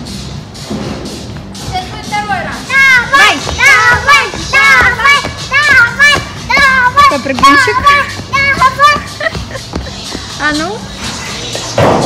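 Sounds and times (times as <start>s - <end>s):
background music: 0.0s - 12.0s
child shouting and squealing: 2.7s - 9.1s.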